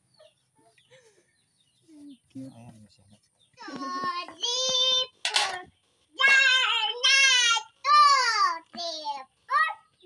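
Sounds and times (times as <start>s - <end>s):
child singing: 3.6s - 9.9s.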